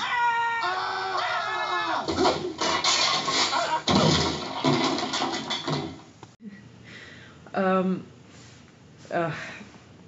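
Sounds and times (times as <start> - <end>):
cartoon characters crying out: 0.0 - 2.1
cartoon crashes: 1.1 - 6.0.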